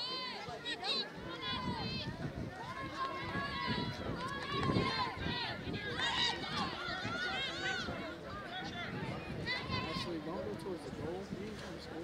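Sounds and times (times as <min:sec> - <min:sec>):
voices shouting and calling: 0:00.0 - 0:10.8.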